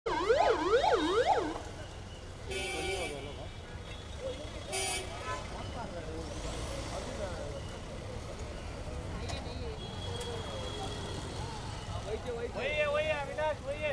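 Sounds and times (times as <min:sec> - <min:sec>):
ambulance siren yelp: 0:00.1 - 0:01.9
traffic: 0:00.1 - 0:13.9.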